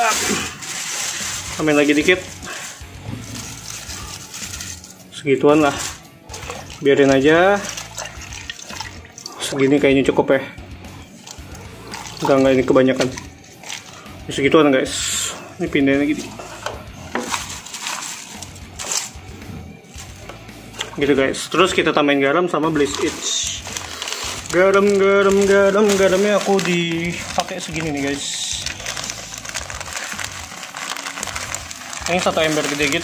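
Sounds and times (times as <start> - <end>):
dry leaves rustling: 0.0 - 6.4, 17.1 - 19.2, 22.8 - 33.0
plastic buckets clicking and knocking: 11.3 - 13.9, 16.1 - 19.2.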